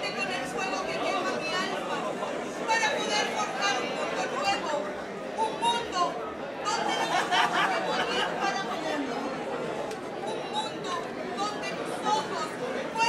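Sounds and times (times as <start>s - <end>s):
woman speaking into microphone: 0.0s - 2.0s, 2.7s - 9.1s, 10.3s - 13.0s.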